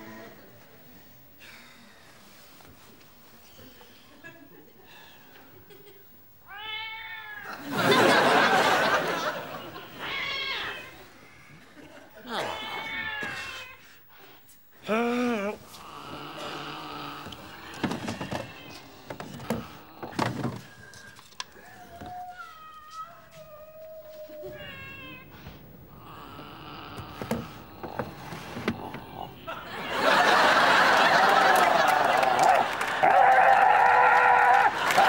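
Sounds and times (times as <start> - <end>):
cat meowing: 6.5 - 7.5, 21.7 - 27.1.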